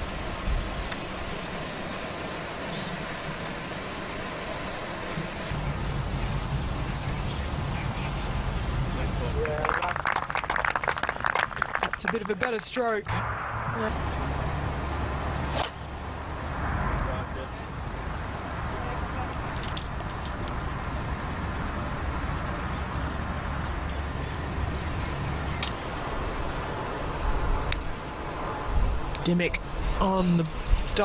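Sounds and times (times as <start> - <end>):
outdoor background noise: 0.0 - 31.0
golf club striking ball: 15.5 - 16.0.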